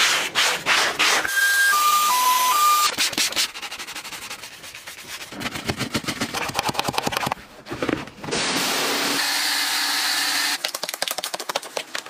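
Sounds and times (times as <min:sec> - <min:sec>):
brush scrubbing: 0:00.0 - 0:01.3, 0:02.9 - 0:07.4
electronic beeps: 0:01.3 - 0:02.9.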